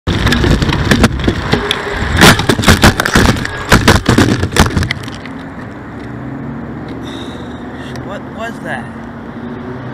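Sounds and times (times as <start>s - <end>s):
bicycle crashing and clattering: 0.1s - 5.3s.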